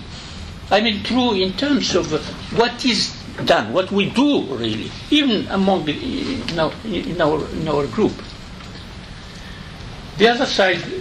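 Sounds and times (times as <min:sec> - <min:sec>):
background hiss: 0:00.0 - 0:11.0
man speaking: 0:00.7 - 0:08.3, 0:10.2 - 0:11.0.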